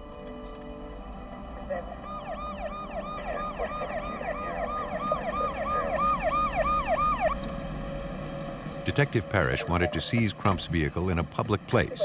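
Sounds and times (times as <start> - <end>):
police siren yelping: 0.0 - 10.3
road and engine noise: 0.0 - 12.0.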